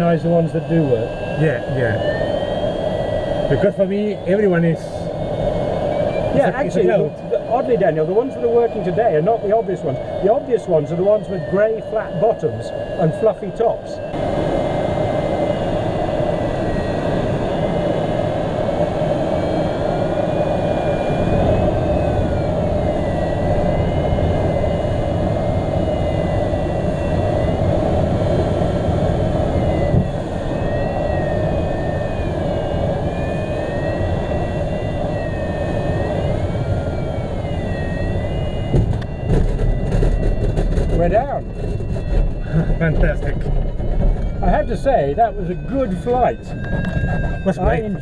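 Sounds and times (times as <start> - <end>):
electronic variometer tone: 0.0 - 48.0.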